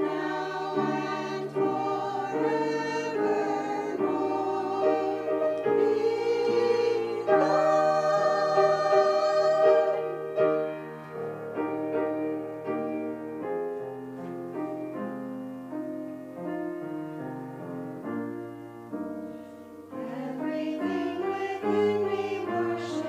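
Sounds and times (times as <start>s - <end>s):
women's choir singing: 0.0s - 11.5s, 19.9s - 23.0s
piano playing: 0.0s - 23.0s.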